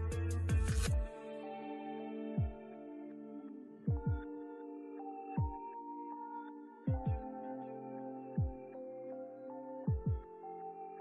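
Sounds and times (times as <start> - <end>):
deep booming beats: 3.9 - 4.2, 6.9 - 7.2.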